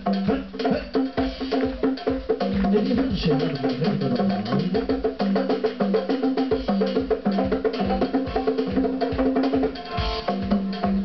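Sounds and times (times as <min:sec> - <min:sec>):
steady low beat: 0:00.0 - 0:05.3
congas played by hand: 0:00.0 - 0:11.0.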